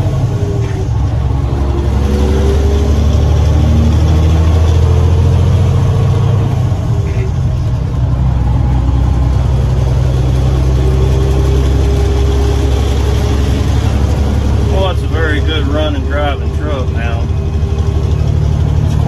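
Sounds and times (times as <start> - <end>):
diesel truck engine drone: 0.0 - 19.0.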